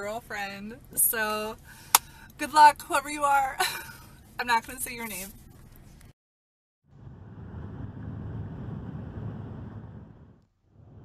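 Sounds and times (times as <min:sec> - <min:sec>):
van road and engine rumble: 0:00.0 - 0:06.1, 0:06.9 - 0:11.0.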